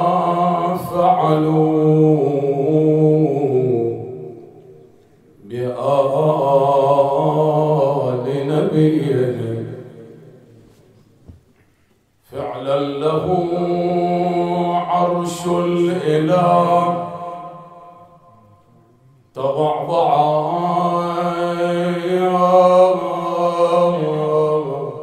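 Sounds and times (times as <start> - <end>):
man chanting into a microphone: 0.0 - 4.6, 5.4 - 10.6, 12.2 - 25.0.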